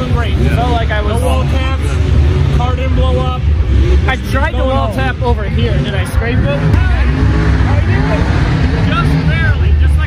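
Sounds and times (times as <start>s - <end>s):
car engine idling: 0.0s - 10.0s
people talking: 0.0s - 10.0s.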